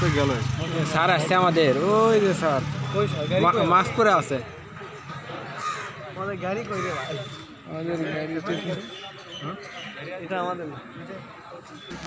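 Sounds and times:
people talking indistinctly: 0.0s - 12.0s
crow cawing: 5.6s - 6.0s, 6.7s - 7.2s.

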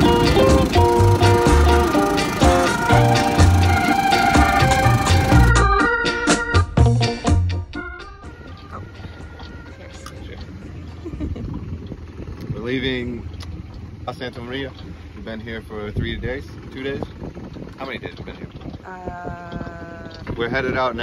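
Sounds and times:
boat noise: 0.0s - 6.7s, 7.3s - 21.0s
wind: 0.0s - 21.0s.

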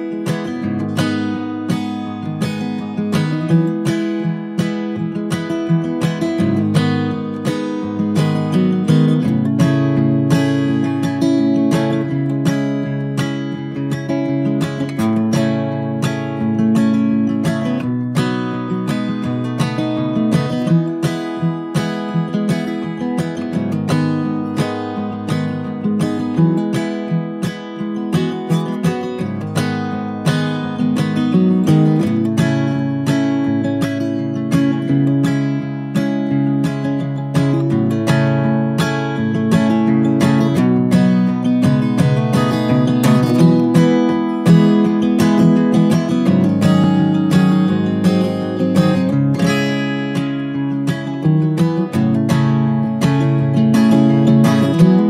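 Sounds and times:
acoustic guitar plucked and strummed: 0.0s - 55.0s.

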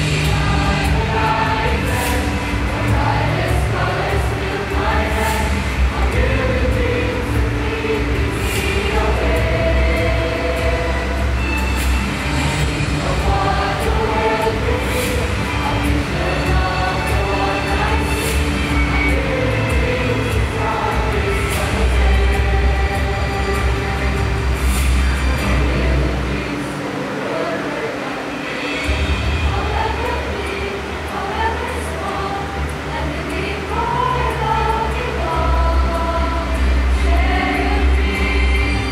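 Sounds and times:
group of students singing: 0.0s - 38.9s.

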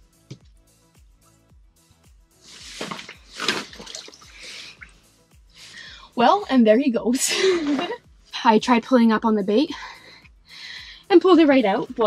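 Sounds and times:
faint background music: 0.0s - 12.0s
water splashing and sloshing: 2.5s - 5.1s.

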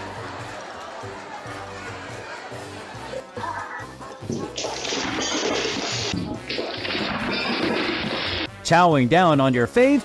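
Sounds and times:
background music: 0.0s - 10.0s
loud splashing water: 4.6s - 8.5s.

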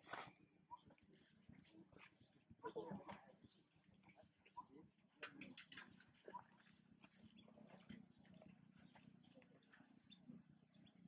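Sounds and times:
faint ticks and rustles: 0.0s - 11.0s.

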